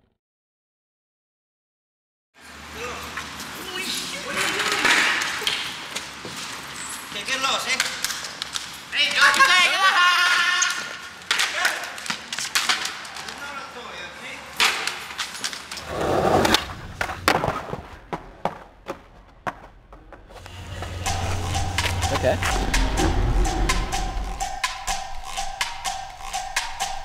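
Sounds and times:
skateboard clacking on pavement: 0:14.6 - 0:20.3
skateboard wheels rolling on concrete: 0:14.8 - 0:21.0
men's raised voices: 0:22.0 - 0:23.0.

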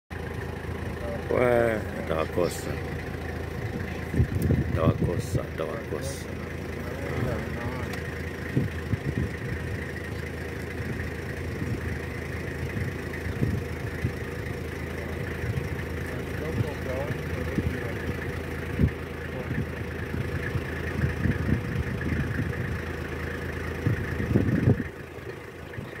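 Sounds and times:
vehicle engine idling: 0:00.1 - 0:26.0
faint voices: 0:00.8 - 0:08.8, 0:14.7 - 0:18.4.

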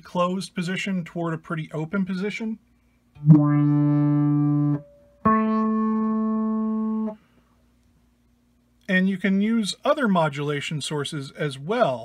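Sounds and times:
filtered electric guitar notes: 0:03.2 - 0:07.2.

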